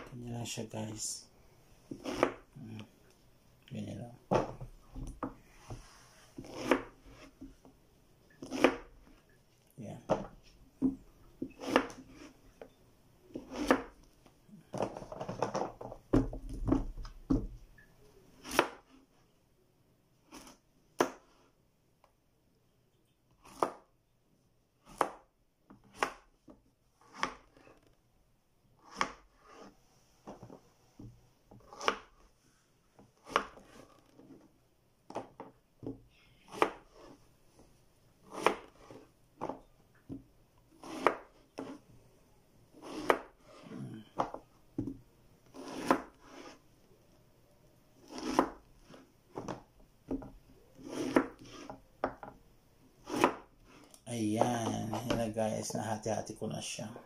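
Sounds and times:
knife cutting gourd: 1.9 - 2.7, 6.4 - 7.4, 8.4 - 8.9, 11.4 - 12.4, 13.3 - 14.0, 18.4 - 18.9, 23.4 - 23.9, 25.8 - 26.3, 27.0 - 27.7, 31.6 - 32.2, 33.2 - 34.0, 36.5 - 37.2, 38.2 - 39.6, 40.8 - 41.8, 42.8 - 44.4, 45.4 - 46.6, 48.0 - 49.7, 50.6 - 51.8, 53.0 - 55.3.

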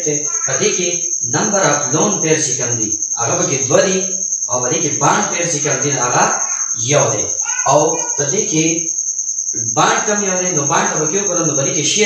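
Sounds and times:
man talking: 0.0 - 8.9, 9.6 - 12.0
high-pitched pulsing trill: 0.0 - 12.0.

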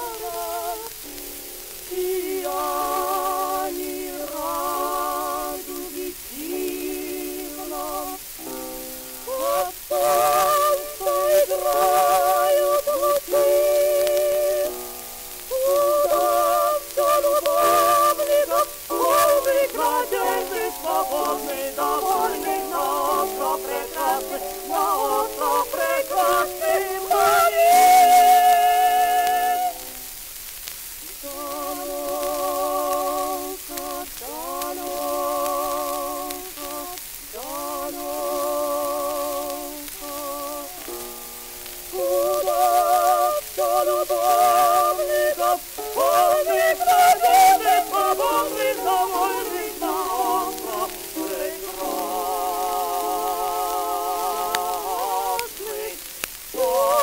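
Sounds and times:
operatic duet singing: 0.0 - 30.2, 31.0 - 57.0
old record surface crackle: 0.0 - 57.0.

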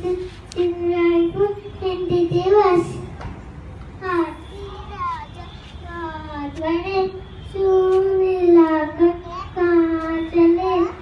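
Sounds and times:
young child singing: 4.3 - 11.0.

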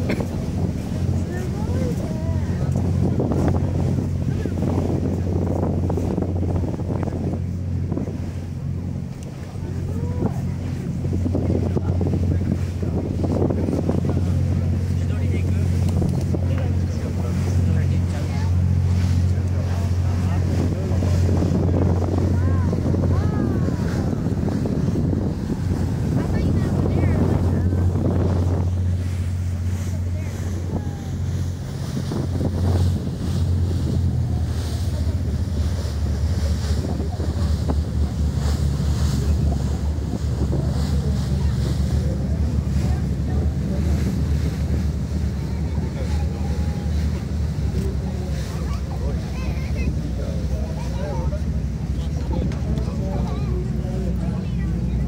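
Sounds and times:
speedboat engines droning: 0.0 - 55.0
water rushing past hull: 0.0 - 55.0
wind buffeting microphone: 0.0 - 55.0.

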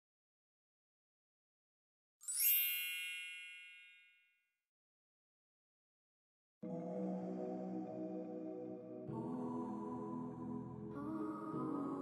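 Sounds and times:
bright chime: 2.2 - 4.4.

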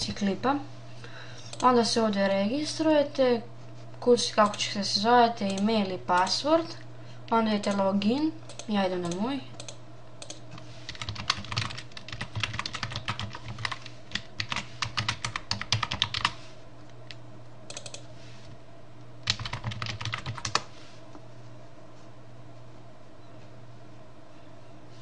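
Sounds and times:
steady low hum: 0.0 - 25.0
computer keyboard typing: 8.5 - 16.4, 17.1 - 18.1, 19.2 - 20.7.

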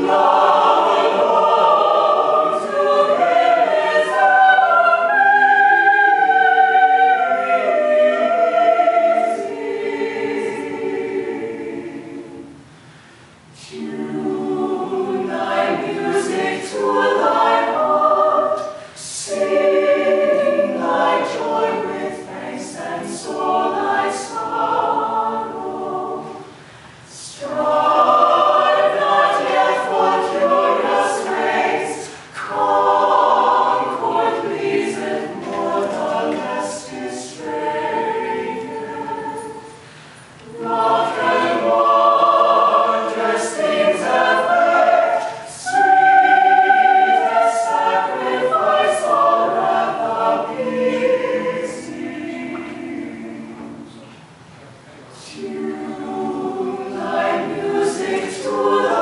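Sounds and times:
choir singing a cappella: 0.0 - 54.4, 55.0 - 59.0.

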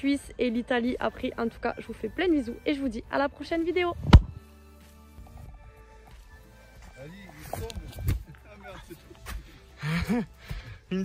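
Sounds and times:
dull thump: 4.0 - 4.4.

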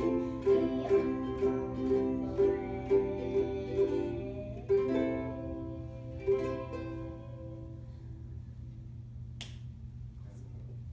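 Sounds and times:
steady low hum: 0.0 - 10.9
hand slap: 9.4 - 9.7.

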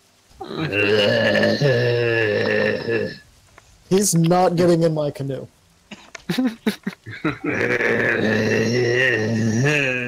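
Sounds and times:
man groaning: 0.4 - 3.2, 7.1 - 10.0.

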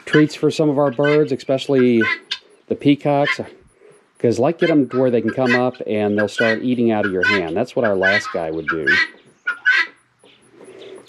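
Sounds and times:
faint flock bird sounds: 0.0 - 11.0
poultry bird call: 0.0 - 11.0.

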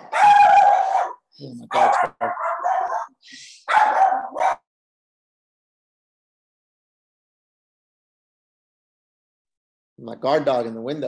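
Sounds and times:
dog barking: 0.0 - 4.7.

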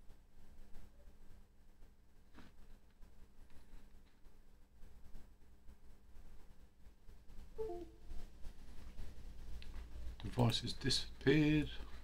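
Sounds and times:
faint low hum: 0.0 - 12.0
computer disconnect chime: 7.6 - 8.0.

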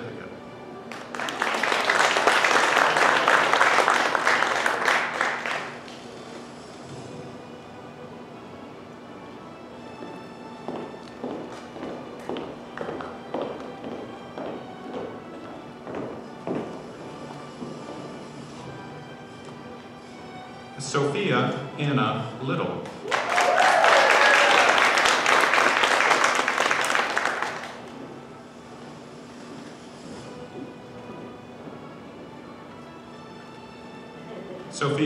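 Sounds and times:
quiet background music: 0.0 - 35.0
small group clapping: 0.9 - 6.0, 22.8 - 28.0
footsteps on stage floor: 9.9 - 18.8, 27.0 - 32.7.

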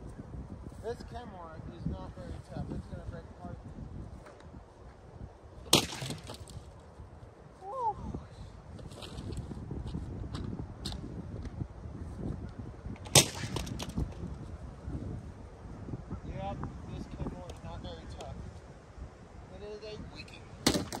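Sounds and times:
wind rumble on microphone: 0.0 - 21.0
plastic vacuum head smashed down: 5.7 - 6.6, 20.7 - 21.0.

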